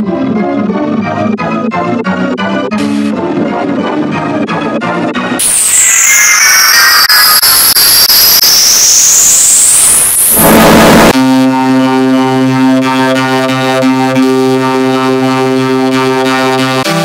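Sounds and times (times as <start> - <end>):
distorted hiss: 5.4 - 11.1
rising high whistle: 5.4 - 11.2.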